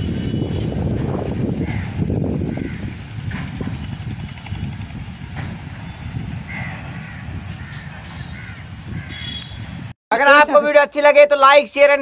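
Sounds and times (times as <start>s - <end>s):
bird calling: 5.8s - 9.8s.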